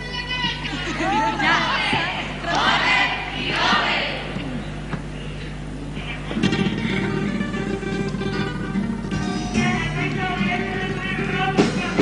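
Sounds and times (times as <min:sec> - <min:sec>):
guitars strumming: 0:06.2 - 0:12.0.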